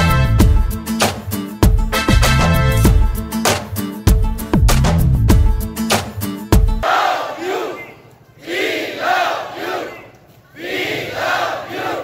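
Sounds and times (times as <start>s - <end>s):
music: 0.0s - 6.8s
crowd shouting in unison: 6.8s - 12.0s.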